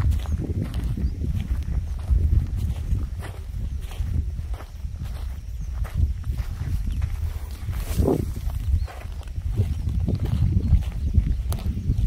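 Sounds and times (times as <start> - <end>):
footsteps on farm ground: 0.0 - 12.0
steady low rumble: 0.0 - 12.0.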